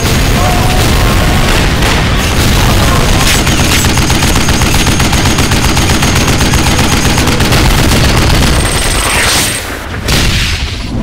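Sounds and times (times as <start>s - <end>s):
rapid automatic gunfire: 0.0s - 9.9s.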